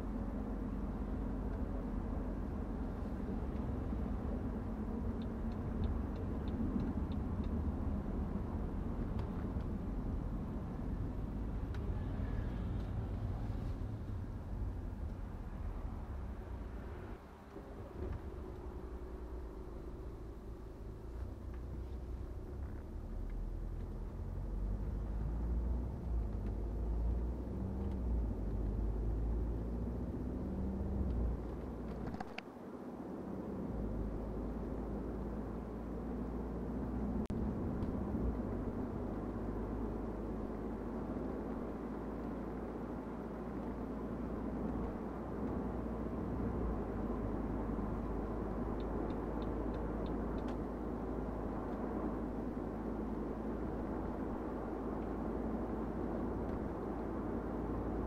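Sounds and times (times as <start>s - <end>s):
diesel engine drone: 0.0s - 58.0s
tyre and road rumble: 0.0s - 58.0s.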